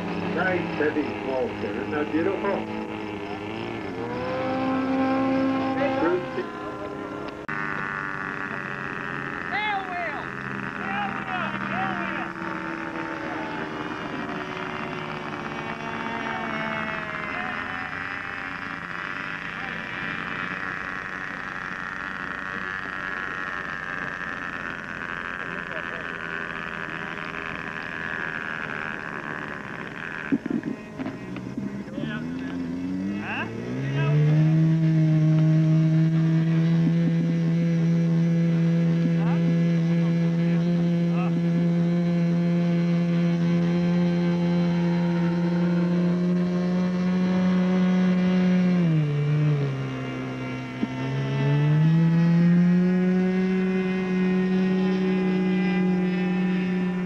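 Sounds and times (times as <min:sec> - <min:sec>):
model airplane engine buzzing: 0:00.0 - 0:57.0.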